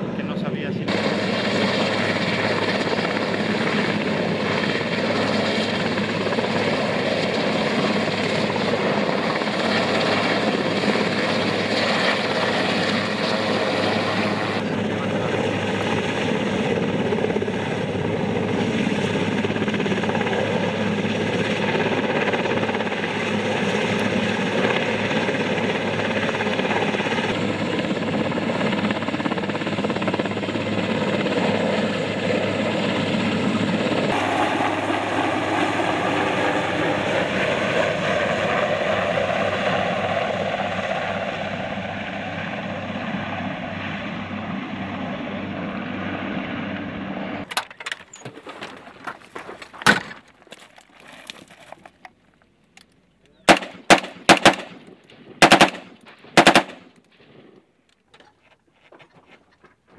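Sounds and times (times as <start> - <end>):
helicopter turbines and rotor: 0.0 - 48.4, 53.2 - 57.4
rifle gunfire: 53.5 - 57.0.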